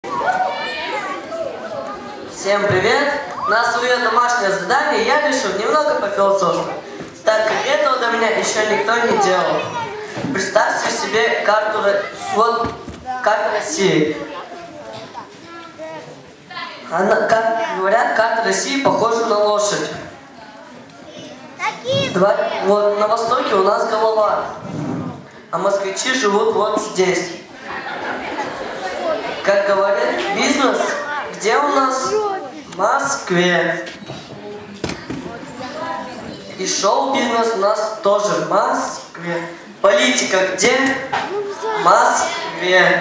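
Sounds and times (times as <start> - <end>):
indistinct audience chatter: 0.0 - 43.0
murmur of children: 0.0 - 43.0
child's rising voice: 21.2 - 22.2, 32.1 - 32.7.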